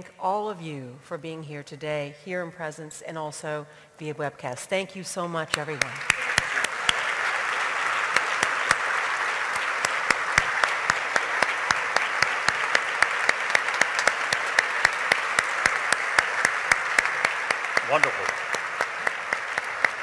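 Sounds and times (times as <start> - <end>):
sharp individual claps: 5.5 - 20.0
large audience applauding: 5.6 - 20.0.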